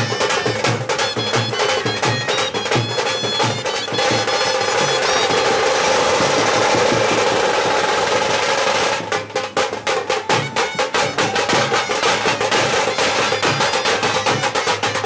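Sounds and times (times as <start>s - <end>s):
reedy wind instrument melody: 0.0s - 7.2s, 9.9s - 15.0s
drum beating and rolling: 0.0s - 15.0s.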